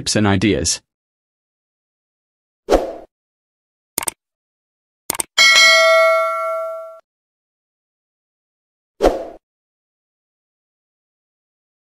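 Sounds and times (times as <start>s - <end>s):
bell ding sound effect: 5.4s - 7.0s.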